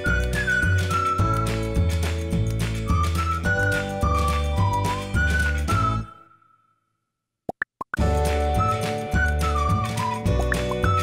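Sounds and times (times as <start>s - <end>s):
upbeat music with whistled melody: 0.0s - 6.8s, 8.0s - 11.0s.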